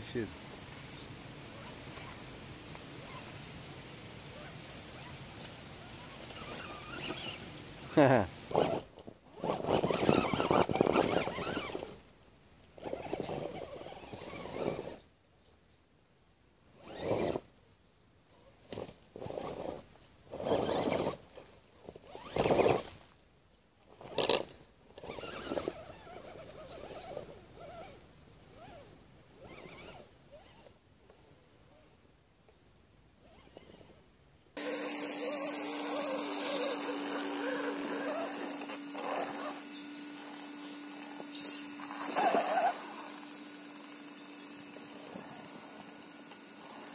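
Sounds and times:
electric motor whirring: 4.3 - 15.0, 19.1 - 22.9, 24.1 - 30.8, 34.6 - 46.9.

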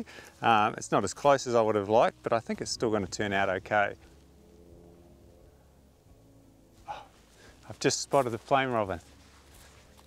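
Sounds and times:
faint low hum: 0.9 - 10.0.

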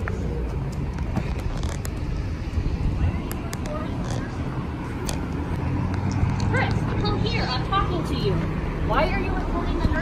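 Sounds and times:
faint voices: 0.0 - 5.5
low traffic rumble: 0.0 - 10.0.

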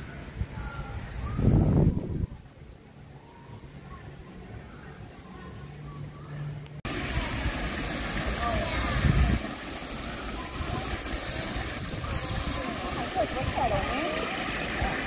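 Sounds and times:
people's voices in background: 0.0 - 15.0
waterfall rushing into pool: 6.9 - 15.0.

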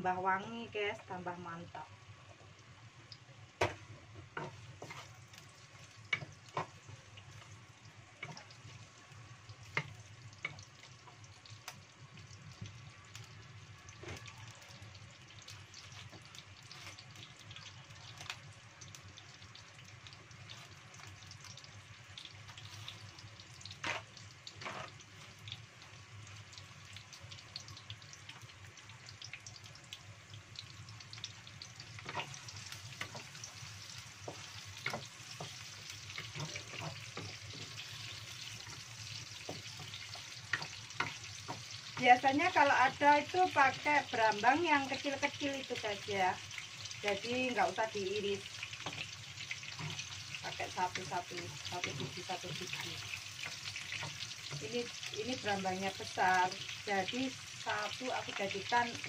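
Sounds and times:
shallots sizzling in oil: 0.0 - 59.0.

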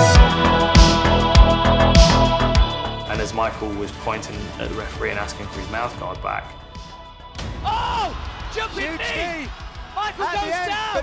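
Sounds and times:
background music with steady bass: 0.0 - 11.0
man shouting excitedly: 7.6 - 11.0.

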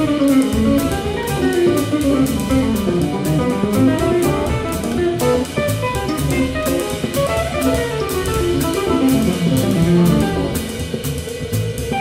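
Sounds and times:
guitar line: 0.0 - 12.0
jazz band playing: 0.0 - 12.0.

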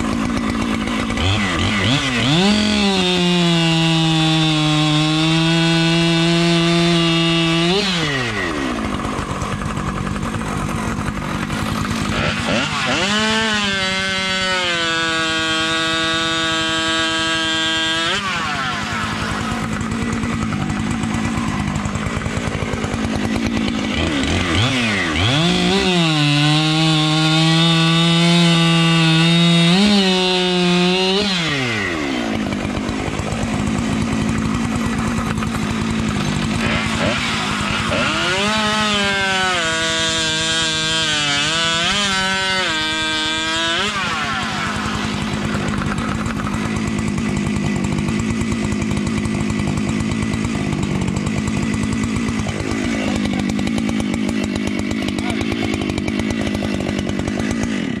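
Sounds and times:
chainsaw cutting log: 0.0 - 58.0
chainsaw idling and revving: 0.0 - 58.0.

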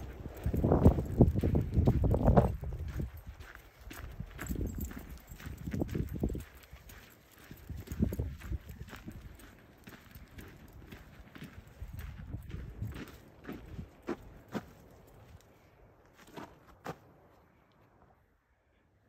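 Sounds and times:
footsteps on dirt trail: 0.0 - 17.9.

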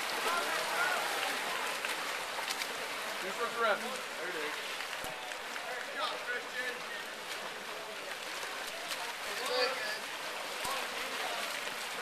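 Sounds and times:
water splashing from swimmers: 0.0 - 12.0.

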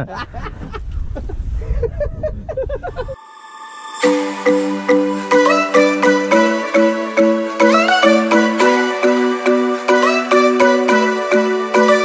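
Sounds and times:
men laughing: 0.0 - 3.2.

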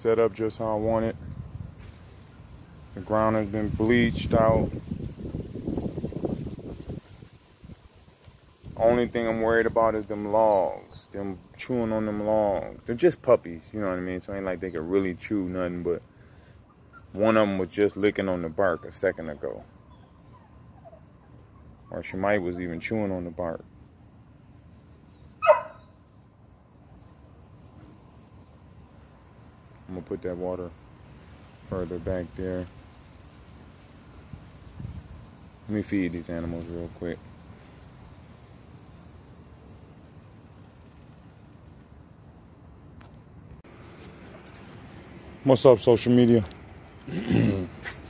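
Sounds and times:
wind buffeting microphone: 0.9 - 10.0, 34.2 - 35.6
puppy barking: 25.4 - 25.9.

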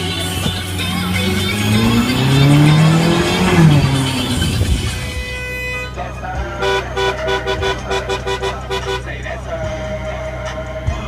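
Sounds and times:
sports car engine accelerating: 0.0 - 6.4
rhythmic music beat: 0.0 - 11.0.

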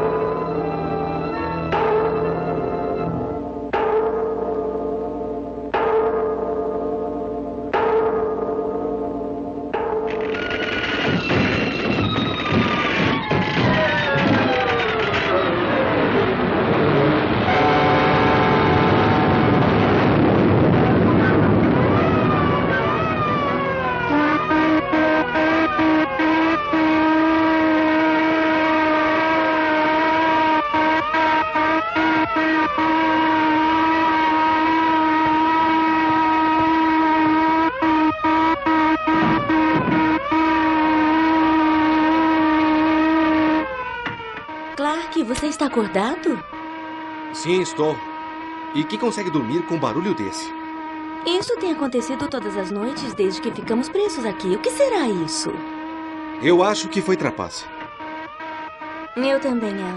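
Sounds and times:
sirens wailing: 0.0 - 59.9.

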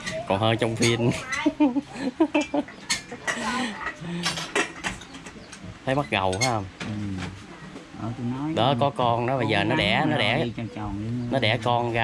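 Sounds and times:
spoons scraping against bowls: 2.4 - 6.6.

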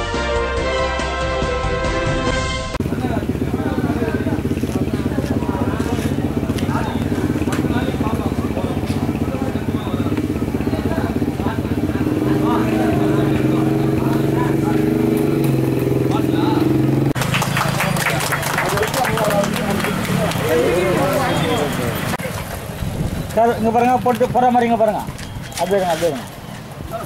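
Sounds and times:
engine running steadily: 2.8 - 22.2
voices talking in background: 2.8 - 27.0.

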